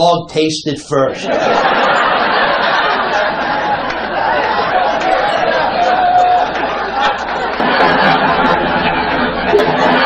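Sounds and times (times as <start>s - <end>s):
audience chattering in a hall: 1.1s - 10.0s.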